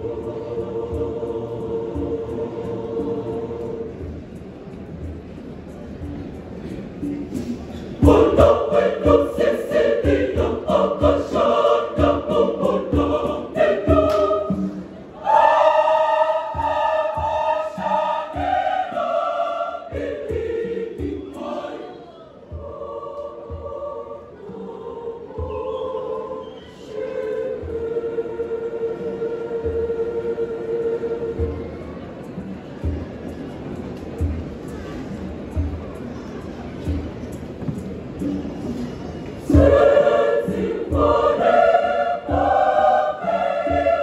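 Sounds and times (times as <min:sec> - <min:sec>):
choir singing in harmony: 0:00.0 - 0:44.0
hand drum beats: 0:06.0 - 0:15.5.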